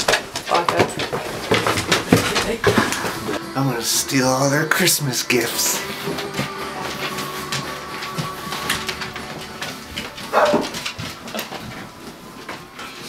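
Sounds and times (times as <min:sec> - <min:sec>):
dog whining: 0:10.3 - 0:10.7.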